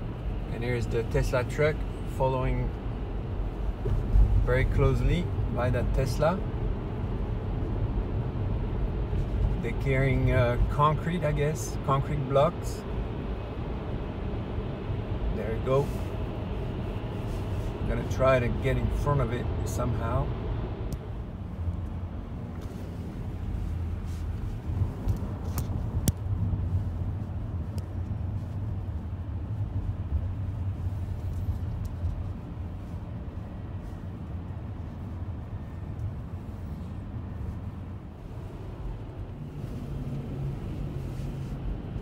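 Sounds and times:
car road and tyre noise: 0.0s - 42.0s.

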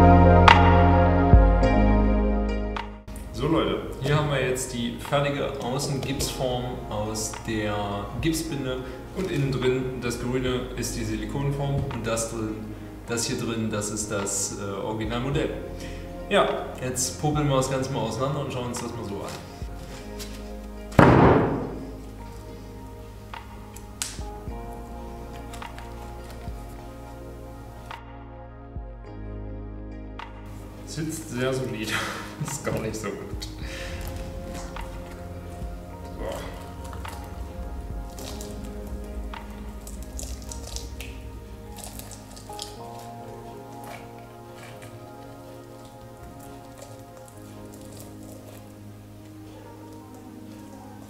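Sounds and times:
background music: 0.0s - 51.0s
silicone mould peeling squelches: 33.4s - 51.0s
plaster shell cracking: 36.3s - 45.0s.

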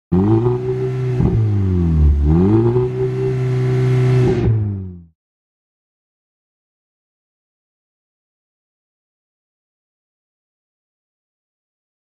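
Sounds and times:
car engine revving: 0.1s - 5.1s.

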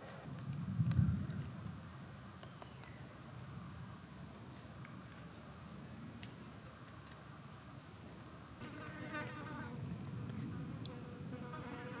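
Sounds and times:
insects buzzing and trilling: 0.0s - 12.0s.

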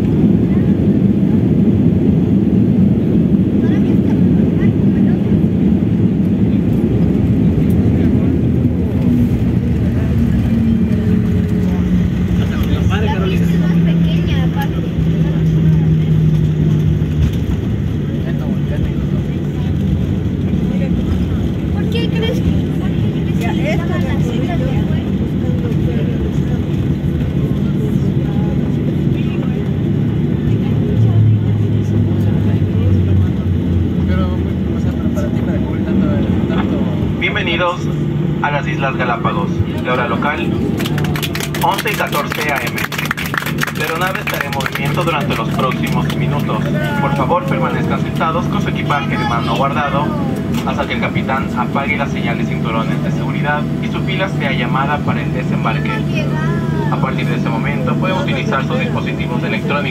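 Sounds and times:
jet engines winding down: 0.0s - 59.9s
runway rollout rumble: 0.0s - 59.9s.

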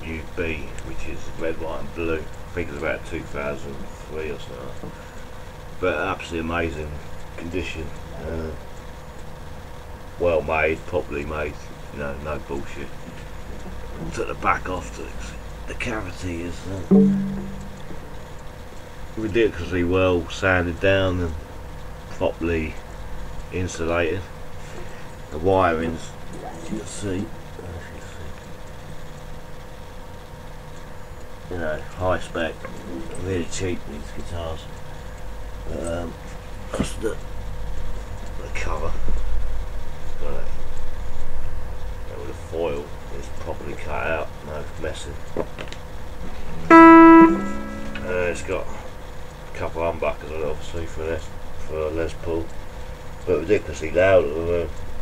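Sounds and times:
electric guitar note ringing: 16.9s - 18.1s, 46.7s - 48.5s.

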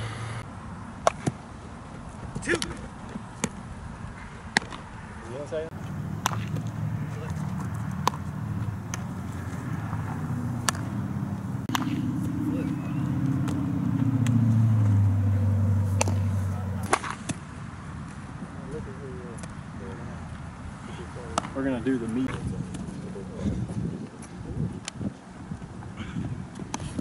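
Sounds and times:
low engine hum: 5.7s - 17.0s
bat striking baseball: 5.7s - 17.4s
baseball popping into glove: 5.8s - 12.4s, 15.9s - 17.4s.

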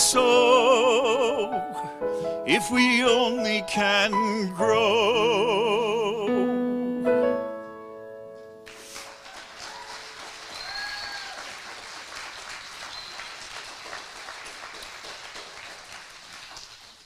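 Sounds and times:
audience applauding: 8.6s - 17.0s.

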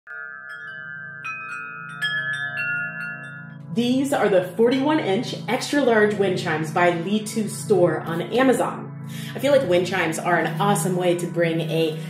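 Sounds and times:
metal wind chimes ringing: 0.1s - 4.7s.

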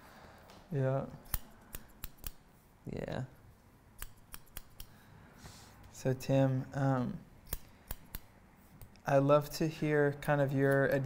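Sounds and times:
scissors snipping hair: 1.0s - 2.4s, 4.0s - 5.0s, 7.4s - 9.1s, 10.2s - 11.0s.

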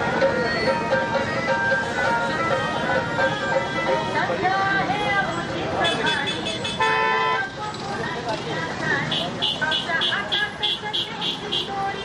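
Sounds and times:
crowd voices: 0.0s - 12.0s
traffic noise: 0.0s - 12.0s
vehicle horn blast: 5.8s - 7.5s.

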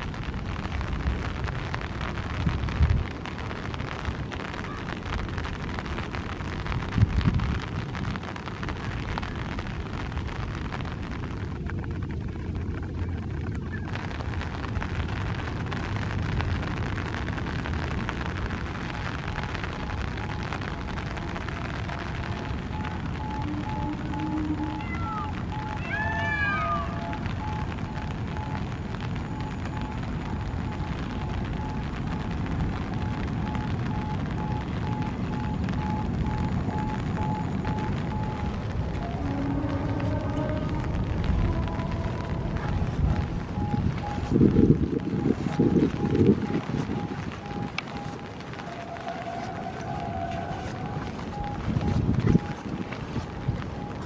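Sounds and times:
rain: 0.0s - 54.0s
wind: 0.0s - 54.0s
faint repeating tone: 20.2s - 28.7s, 33.1s - 52.6s.

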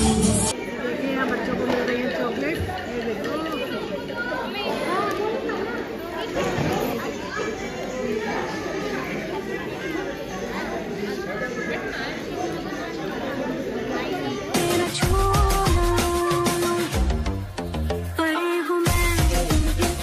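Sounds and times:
crowd chatter echoing in a hall: 0.0s - 20.0s.

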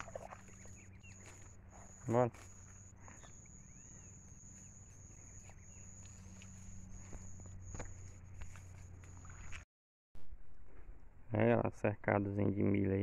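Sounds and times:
footsteps squelching through mud: 0.0s - 9.6s
steady high-pitched whine: 0.5s - 9.6s.

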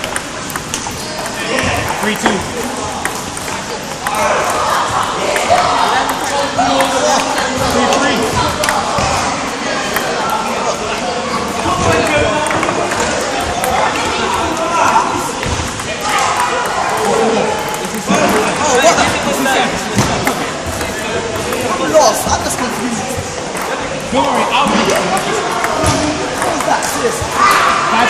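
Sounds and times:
table tennis balls clicking: 0.0s - 27.6s
chatter of many voices: 0.0s - 28.0s.

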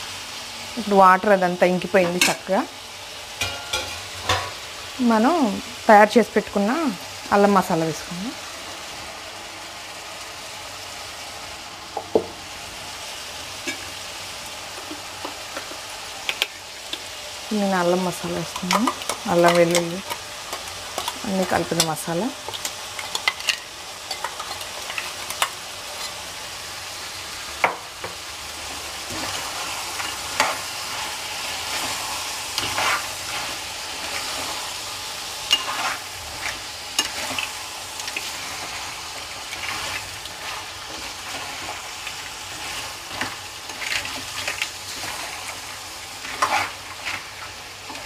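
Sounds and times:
food sizzling in a pan: 0.0s - 48.0s
spoon scraping and clicking on pan: 22.5s - 26.2s.

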